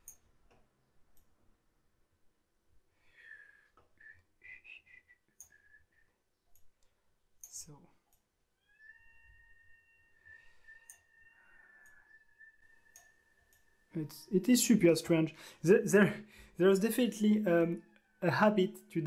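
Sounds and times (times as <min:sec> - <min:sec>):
faint steady high tone: 0:08.6 - 0:15.2
computer mouse clicks: 0:10.7 - 0:11.1.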